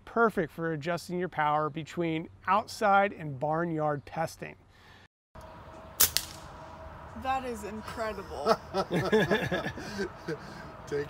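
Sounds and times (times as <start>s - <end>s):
quieter second crack: 5.4s - 6.7s
air rifle shot crack: 6.0s - 6.6s.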